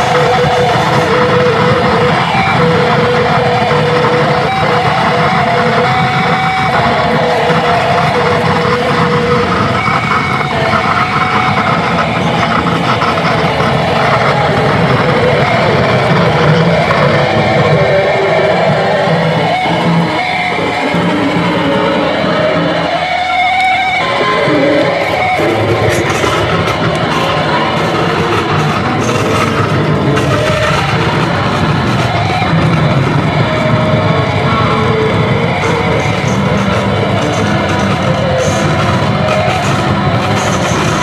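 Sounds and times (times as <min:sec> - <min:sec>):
distorted electric guitar drone: 0:00.0 - 0:41.0.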